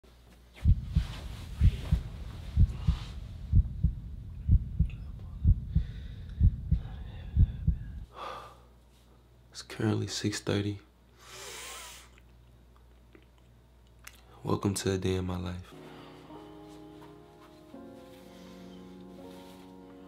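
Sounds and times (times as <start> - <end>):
low steady hum: 0.1 - 11.2
heartbeat double thumps: 0.6 - 8.1.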